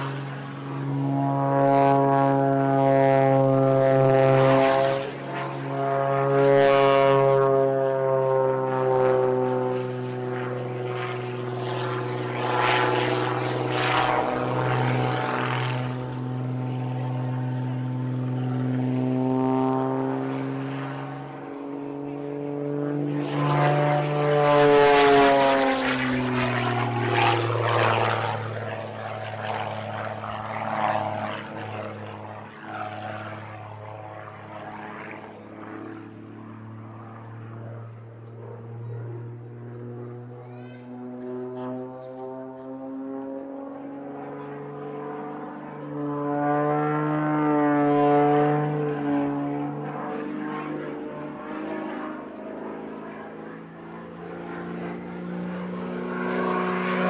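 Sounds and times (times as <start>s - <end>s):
propeller plane engine in flight: 0.0s - 57.0s.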